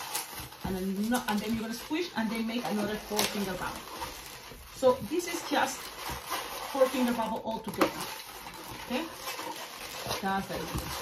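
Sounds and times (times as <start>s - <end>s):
balloon squeaking and rubbing: 0.0s - 11.0s.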